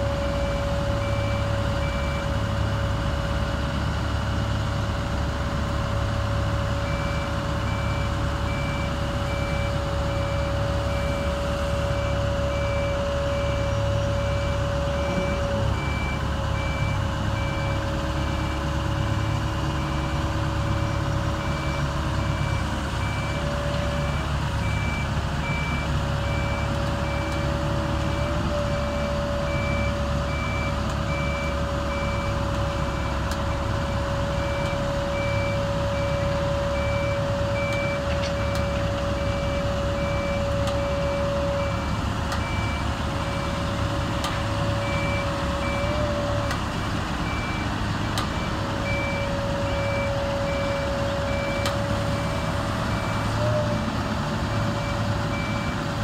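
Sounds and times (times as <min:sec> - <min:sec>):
crane diesel engine running: 0:00.0 - 0:56.0
engine whine: 0:00.0 - 0:56.0.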